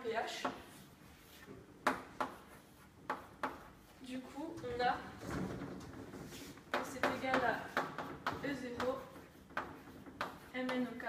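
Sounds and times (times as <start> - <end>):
chalk scratching on board: 0.4 - 4.2, 6.3 - 11.0.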